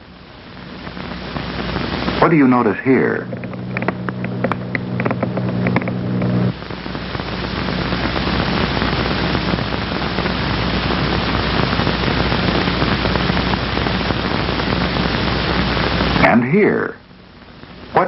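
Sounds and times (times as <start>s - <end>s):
static electricity crackling: 0.0s - 18.0s.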